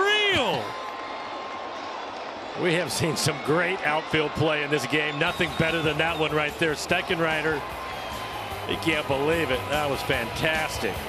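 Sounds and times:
commentator exclaiming: 0.0 - 0.7
crowd noise in stands: 0.0 - 11.0.

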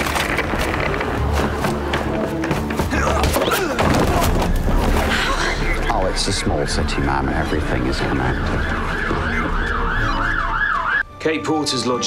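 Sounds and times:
siren yelping: 6.0 - 11.1.

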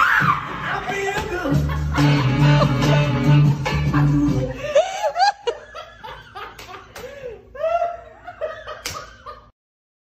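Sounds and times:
people laughing and giggling: 0.6 - 9.5.

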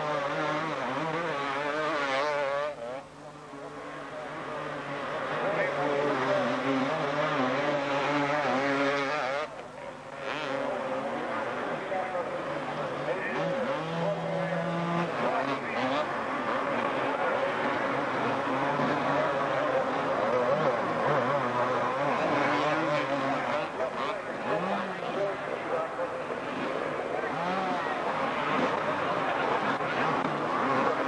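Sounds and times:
motocross bikes racing: 0.0 - 31.0.

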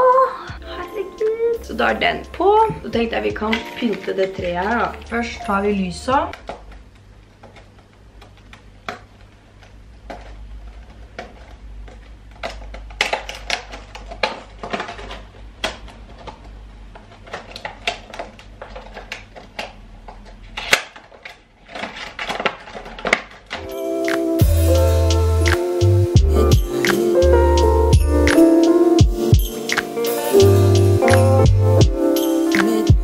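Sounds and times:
plastic packaging crinkling: 6.4 - 24.0
music with heavy bass beat: 23.7 - 33.0.

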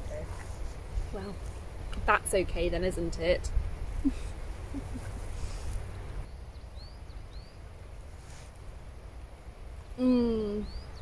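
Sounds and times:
wind buffeting microphone: 0.0 - 7.3
bird chirping: 3.8 - 7.7, 10.4 - 11.0.

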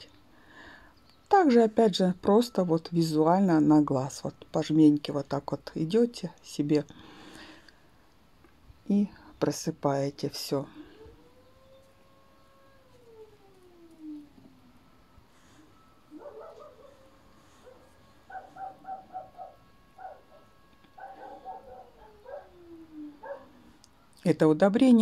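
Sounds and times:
dog howling and whining: 10.7 - 23.8.

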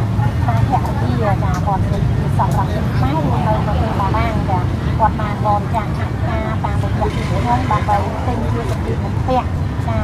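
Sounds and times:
people talking: 0.0 - 10.0
street traffic rumble: 0.0 - 10.0.

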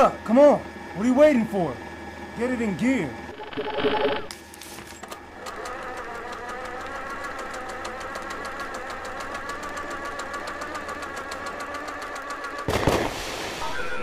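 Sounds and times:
motor ticking and humming: 0.0 - 12.7.

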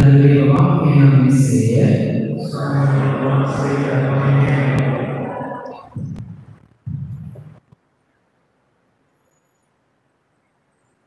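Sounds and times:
man chanting a prayer: 0.0 - 6.0.

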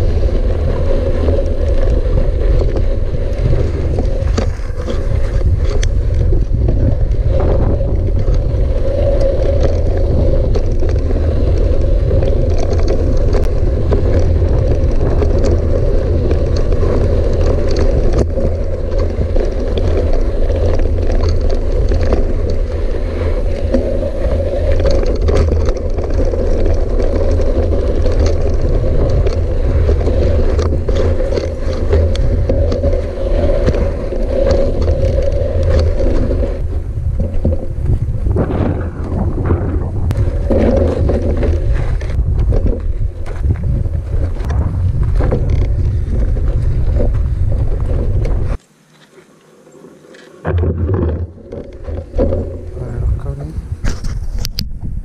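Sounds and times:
bike clicks and rattles: 0.0 - 55.0
bike tyres rumbling on gravel: 0.0 - 55.0.

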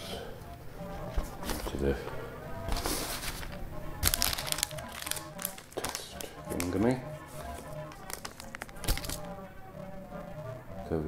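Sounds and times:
background music: 0.0 - 11.0
paper leaflet rustling: 1.1 - 9.4.

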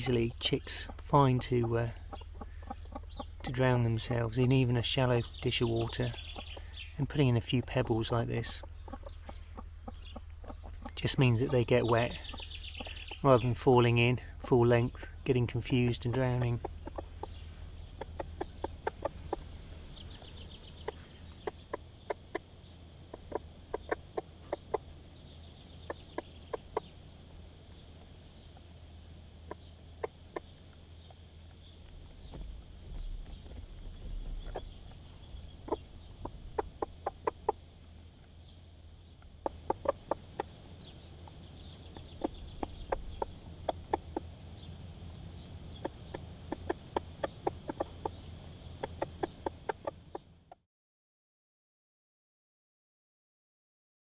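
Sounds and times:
chicks peeping: 0.0 - 50.6
hen clucking: 0.0 - 50.6.

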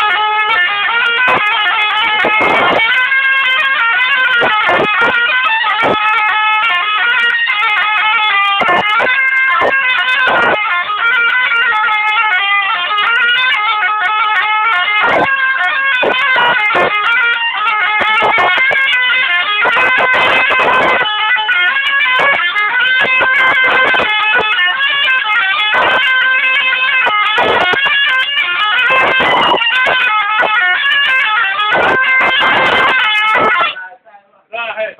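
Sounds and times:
shawm playing fast melody: 0.0 - 33.8.

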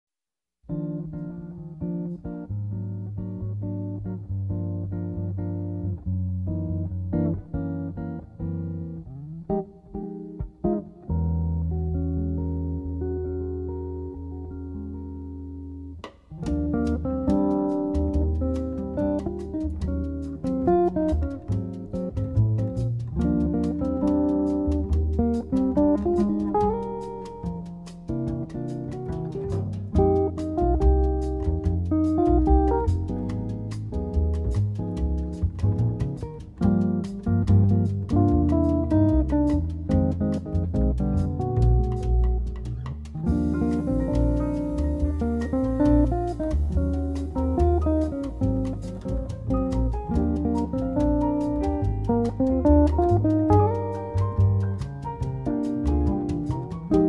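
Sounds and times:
jazz guitar ballad: 0.7 - 57.0
rhythm section playing: 16.4 - 57.0.

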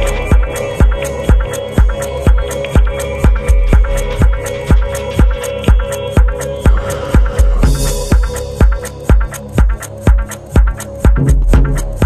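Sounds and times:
hi-hat ticks: 0.0 - 12.0
house dance music: 0.0 - 12.0
kick drum beat: 0.0 - 12.0.

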